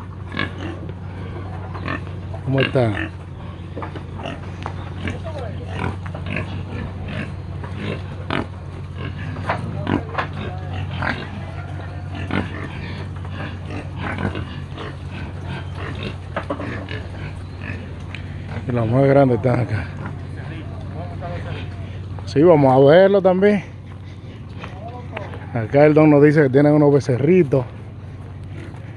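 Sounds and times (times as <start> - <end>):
low hum: 0.0 - 28.9
pigs eating: 0.0 - 28.9
pigs grunting: 0.0 - 28.9.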